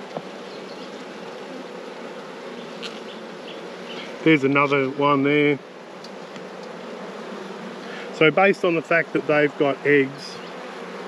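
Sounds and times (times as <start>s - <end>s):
bees buzzing: 0.0s - 11.0s.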